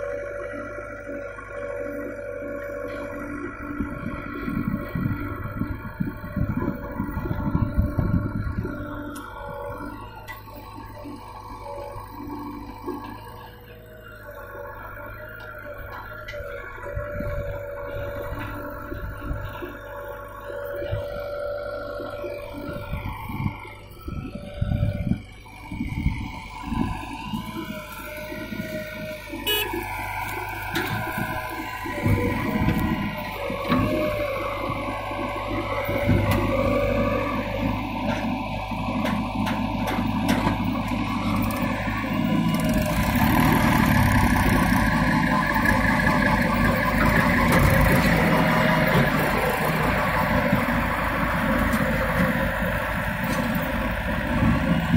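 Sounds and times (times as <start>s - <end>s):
diesel engines running: 0.0s - 54.9s
tractor pulling away: 0.0s - 54.9s.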